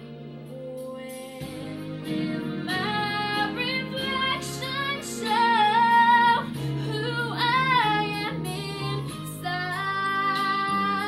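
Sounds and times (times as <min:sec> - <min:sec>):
instrumental backing track: 0:00.0 - 0:11.0
woman singing with vibrato: 0:00.5 - 0:11.0.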